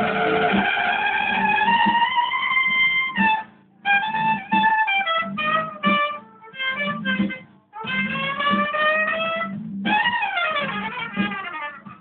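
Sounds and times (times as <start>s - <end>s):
trumpet holding long note: 0.0s - 3.4s, 4.0s - 12.0s
band backing music with low beat: 0.0s - 12.0s.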